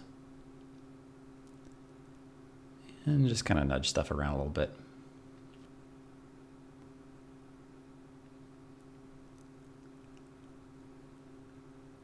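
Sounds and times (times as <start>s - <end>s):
faint low hum with hiss: 0.0s - 12.0s.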